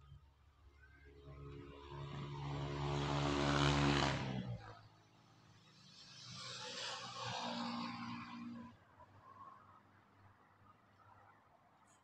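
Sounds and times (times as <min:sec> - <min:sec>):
vehicle passing by: 0:01.2 - 0:08.8.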